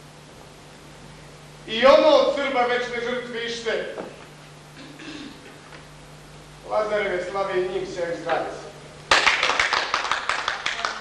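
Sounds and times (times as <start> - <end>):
people clapping: 9.1 - 11.0.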